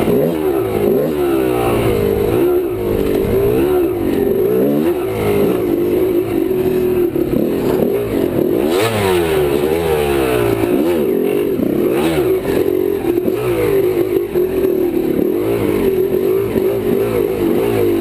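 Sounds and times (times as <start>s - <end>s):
dirt bike engine revving: 0.0s - 18.0s.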